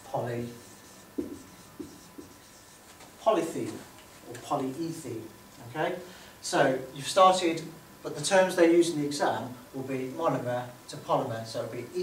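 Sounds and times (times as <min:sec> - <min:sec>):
marker writing on whiteboard: 0:00.5 - 0:03.0.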